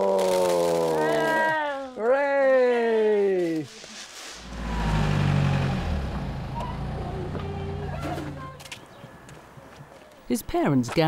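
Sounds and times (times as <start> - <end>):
vehicle engine rumbling past: 4.4 - 8.6.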